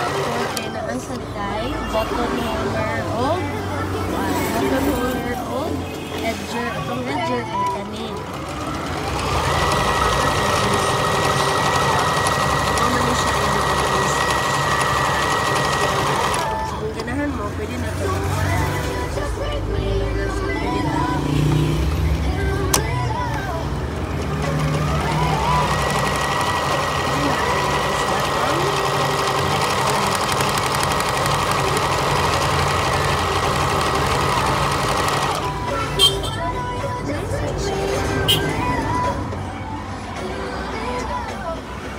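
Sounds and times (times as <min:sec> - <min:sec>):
sewing machine stitching: 0:00.0 - 0:01.2, 0:04.2 - 0:17.1, 0:22.6 - 0:36.1.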